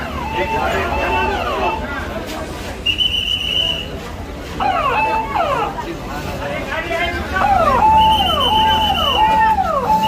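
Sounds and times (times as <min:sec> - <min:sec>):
ambulance siren: 0:00.0 - 0:02.0, 0:04.6 - 0:05.9, 0:07.3 - 0:10.0.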